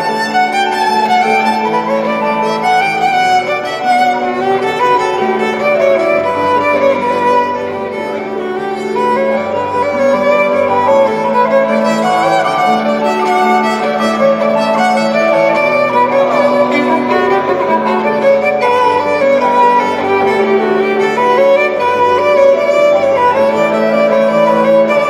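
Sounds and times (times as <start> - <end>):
violins playing melody: 0.0 - 25.0
long held low notes: 4.2 - 24.1.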